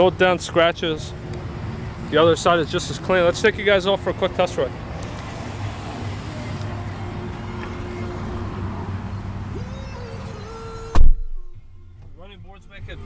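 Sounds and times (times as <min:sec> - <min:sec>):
car door slamming: 0:10.4 - 0:12.2.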